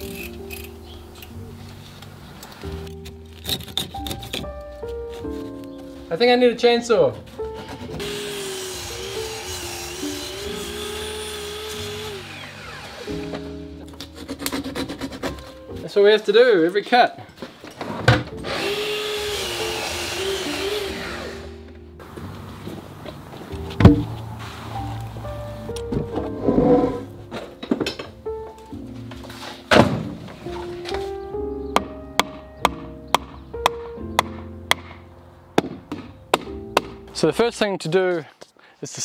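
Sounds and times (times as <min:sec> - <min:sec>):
background music: 0:00.0 - 0:38.2
mitre saw cutting timber: 0:07.8 - 0:15.5, 0:18.4 - 0:21.7.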